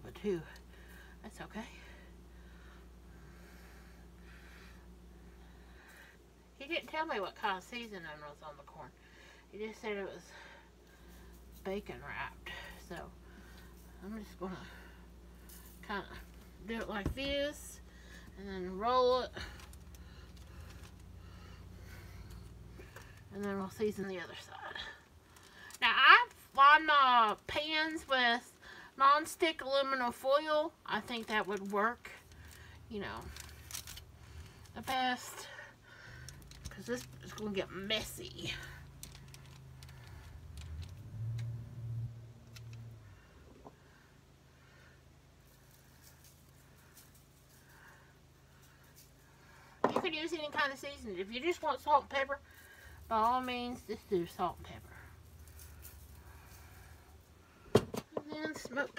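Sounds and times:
low steady hum: 0:00.0 - 0:58.9
faint handling rustles: 0:12.5 - 0:26.6, 0:31.0 - 0:41.5, 0:45.4 - 0:50.8, 0:51.5 - 0:58.9.

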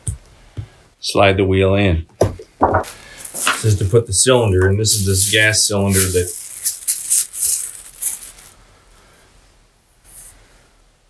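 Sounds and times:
faint handling noise: 0:02.4 - 0:08.6
packaging rustling: 0:03.0 - 0:08.6.

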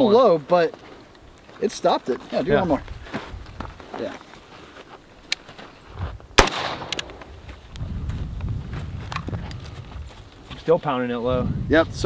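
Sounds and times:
rifle shot with echo: 0:06.4 - 0:07.4.

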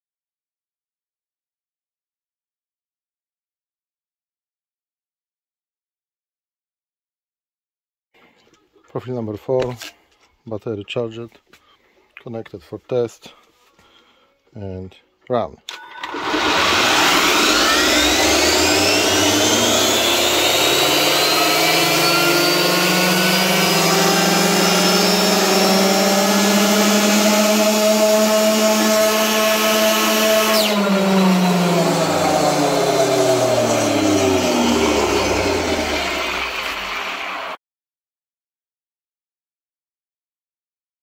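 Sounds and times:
electric motor and drivetrain whining: 0:15.7 - 0:37.6.

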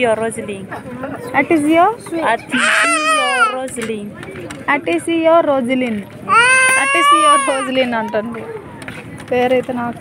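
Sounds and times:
child's high-pitched cry: 0:02.5 - 0:03.6, 0:06.3 - 0:07.8.

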